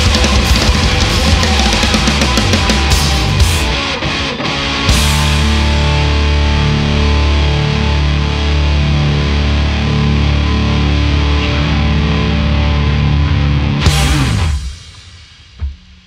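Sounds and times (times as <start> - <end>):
rock band droning chord: 0.0 - 16.0.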